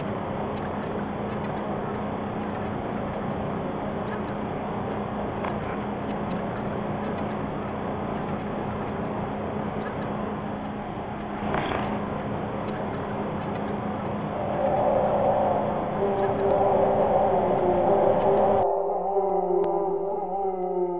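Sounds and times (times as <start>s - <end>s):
noisy rumble: 0.0s - 20.9s
steady low hum: 0.0s - 20.9s
sustained drone tones: 0.0s - 20.9s.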